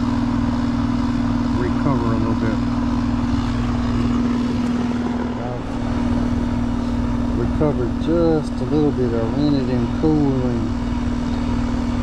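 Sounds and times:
compressor hum: 0:00.0 - 0:12.0
fan noise: 0:00.0 - 0:12.0.

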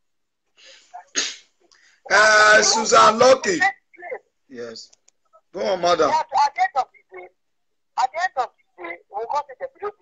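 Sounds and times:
person sneezing: 0:00.7 - 0:01.6.

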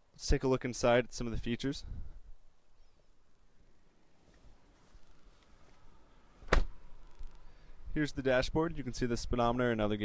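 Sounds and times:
car door shutting: 0:06.4 - 0:06.8.

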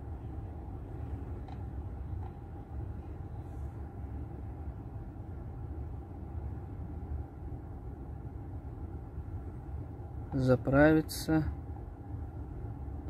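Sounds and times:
car rumble inside cabin: 0:00.0 - 0:13.0.

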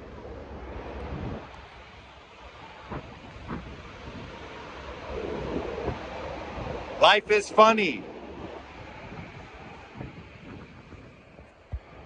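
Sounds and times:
city street noise: 0:00.0 - 0:12.0
wind rumbling on microphone: 0:00.0 - 0:12.0.

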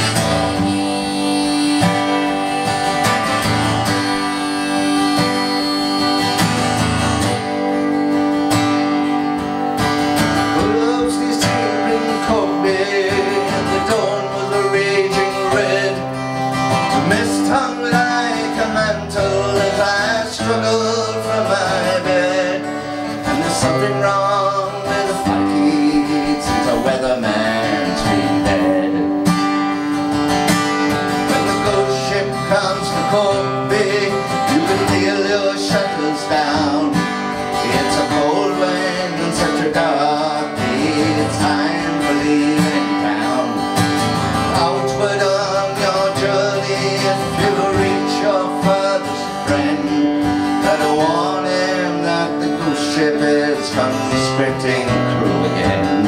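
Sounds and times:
man singing: 0:00.0 - 0:08.1, 0:10.4 - 0:30.0, 0:30.6 - 0:56.0
acoustic guitar strumming: 0:00.0 - 0:56.0.

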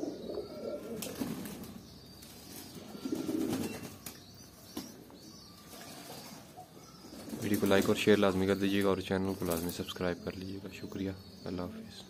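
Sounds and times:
pigeons cooing: 0:00.0 - 0:11.9.

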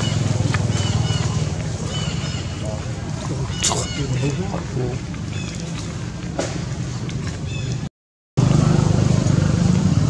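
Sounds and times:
low motor rumble: 0:00.0 - 0:10.0.

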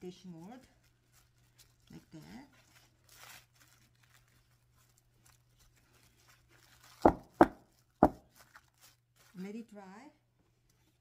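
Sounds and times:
plastic cling wrap crinkling: 0:00.0 - 0:09.8
loud thumps: 0:07.1 - 0:08.2.

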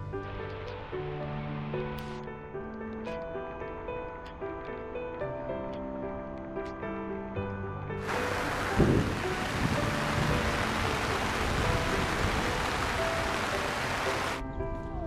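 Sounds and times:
soft background music: 0:00.0 - 0:15.0
heavy rain hissing: 0:08.0 - 0:14.4.

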